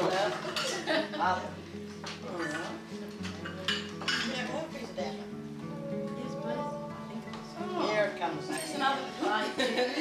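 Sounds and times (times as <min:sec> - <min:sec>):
crockery clinking: 0:00.0 - 0:01.0, 0:02.3 - 0:04.7, 0:08.4 - 0:10.0
music playing: 0:00.0 - 0:10.0.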